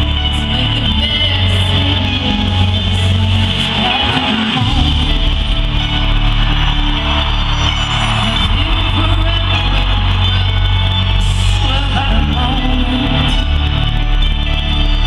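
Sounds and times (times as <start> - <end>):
woman singing into a microphone: 0.0 - 5.7, 11.2 - 13.6
bass-heavy live concert music: 0.0 - 15.0.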